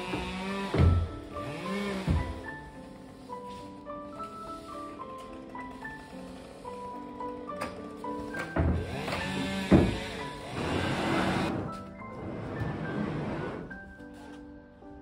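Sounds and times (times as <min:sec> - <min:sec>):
furniture scraping: 0:00.0 - 0:04.9, 0:08.0 - 0:14.4
background music: 0:00.0 - 0:15.0.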